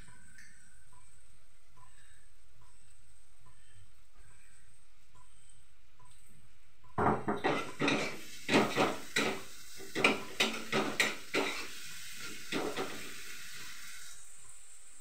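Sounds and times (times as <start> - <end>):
metal spatula scraping frying pan: 7.4 - 11.8
sizzling hiss from pan: 7.4 - 15.0.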